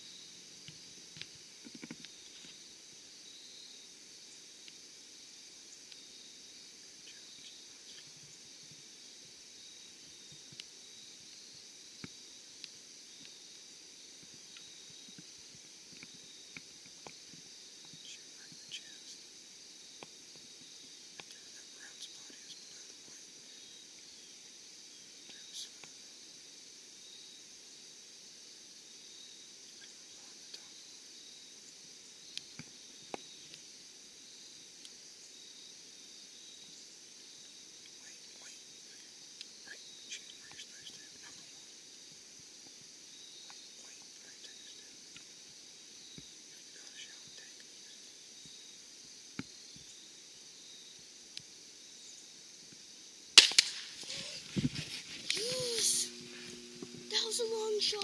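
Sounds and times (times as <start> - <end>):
insects chirring: 0.0 - 58.0
loud gunshot: 53.4 - 54.0
rustling and handling noise: 54.0 - 58.0.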